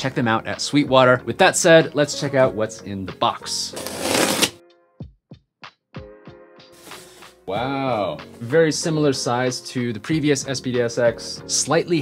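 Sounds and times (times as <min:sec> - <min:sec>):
packing tape tearing off box: 0:03.8 - 0:04.6
synth background music: 0:06.0 - 0:12.0.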